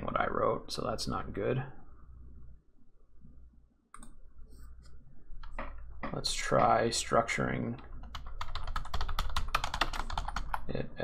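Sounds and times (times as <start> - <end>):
computer mouse clicking: 3.9 - 4.2.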